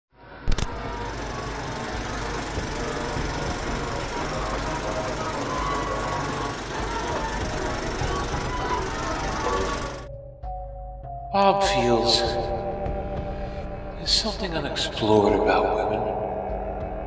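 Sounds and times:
sharp click: 0.5 - 0.8
film projector rattling: 0.5 - 10.1.

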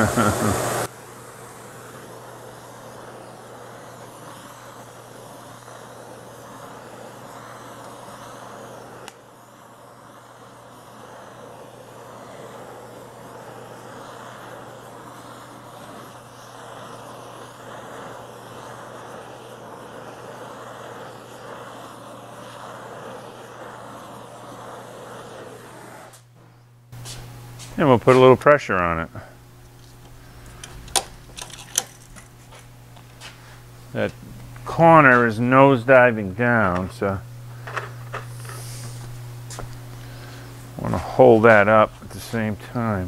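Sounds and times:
low steady hum: 0.0 - 43.0
torch flame hissing: 0.0 - 43.0.

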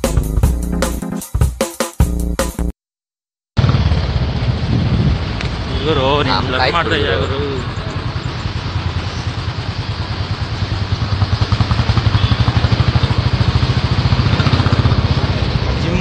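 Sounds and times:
engine running with fast pulse: 3.6 - 5.8, 6.8 - 16.0.

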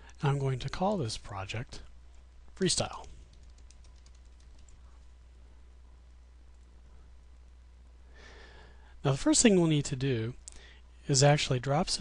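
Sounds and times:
low steady hum: 0.0 - 12.0
light keyboard keystrokes: 2.9 - 5.0.

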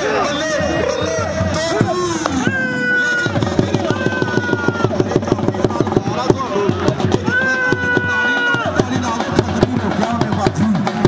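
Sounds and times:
dhol drum beating fast: 0.0 - 11.0.

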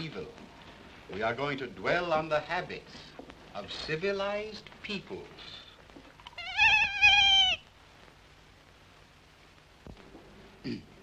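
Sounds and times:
boy imitating cat meow: 6.3 - 7.6.

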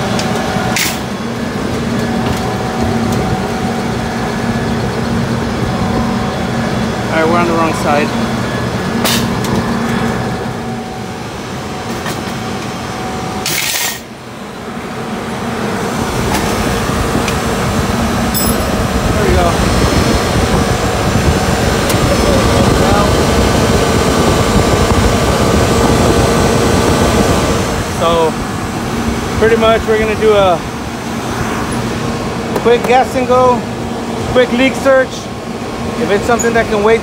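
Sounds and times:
loud machinery noise: 0.0 - 37.0.

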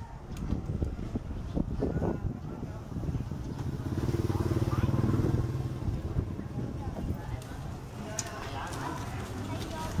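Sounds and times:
motorbike engine passing: 3.5 - 6.4.

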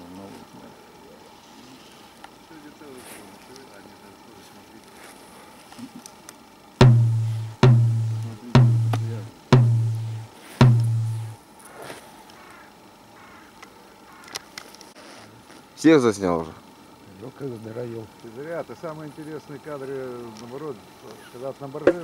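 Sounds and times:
heavy booming thumps: 6.8 - 11.4.

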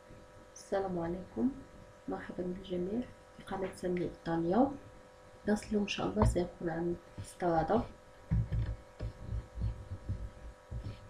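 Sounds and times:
electrical hum: 0.0 - 11.0
soft low thumps: 5.6 - 11.0.

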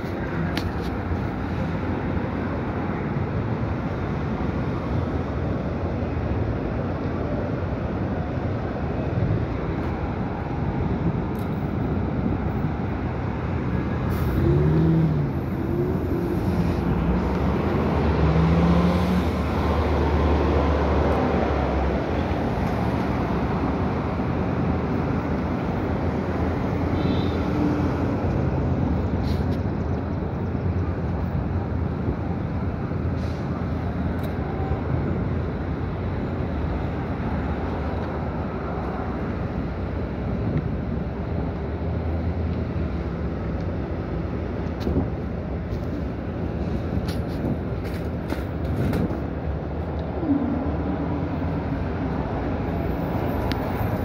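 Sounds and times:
city street traffic: 0.0 - 54.0.

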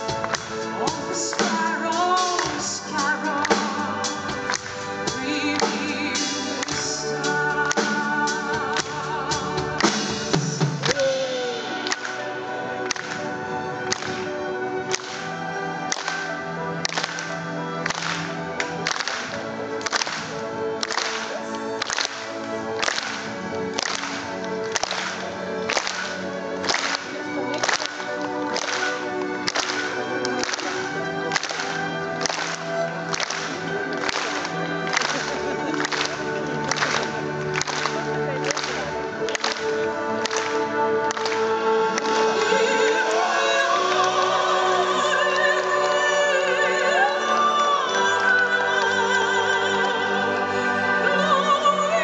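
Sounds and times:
orchestra holding sustained notes: 0.0 - 52.0.

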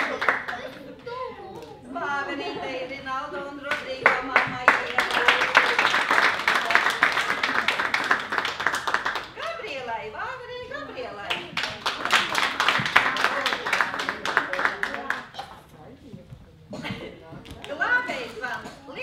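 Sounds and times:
crowd applause: 0.0 - 1.1, 4.0 - 9.4, 11.3 - 15.4
voices: 0.0 - 8.6.

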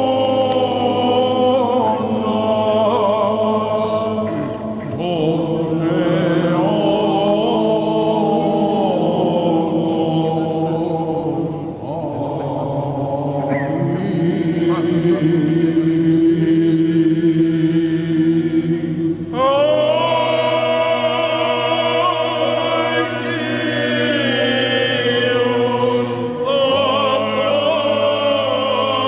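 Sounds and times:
choir chanting: 0.0 - 29.0
sustained low vocal drone: 0.0 - 29.0.

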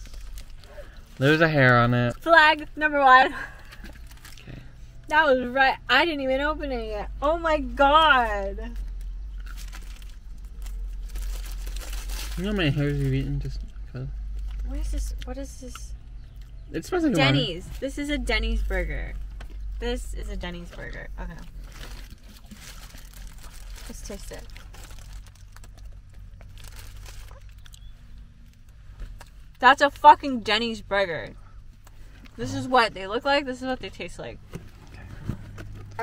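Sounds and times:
paper wrapper crinkling: 0.0 - 1.4, 3.6 - 4.5, 8.8 - 13.2, 21.3 - 28.7
chewing a burger: 0.0 - 2.2, 3.6 - 5.0, 8.8 - 16.7, 21.2 - 30.0
steady low hum: 0.0 - 36.0.

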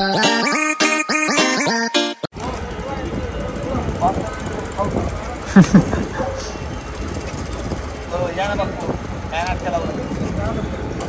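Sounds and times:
go-kart engines idling: 2.4 - 10.5.

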